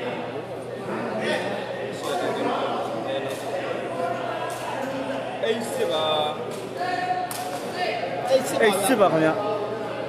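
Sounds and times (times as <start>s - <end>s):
crowd chatter in echoing hall: 0.0s - 10.0s.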